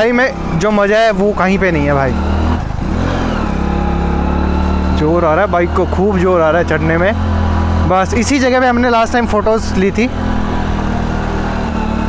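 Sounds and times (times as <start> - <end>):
motorcycle engine labouring uphill: 0.0 - 12.0.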